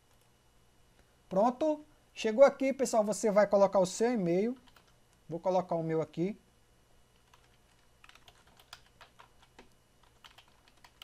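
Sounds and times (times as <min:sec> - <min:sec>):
keyboard typing: 0:04.5 - 0:05.0, 0:07.2 - 0:11.0.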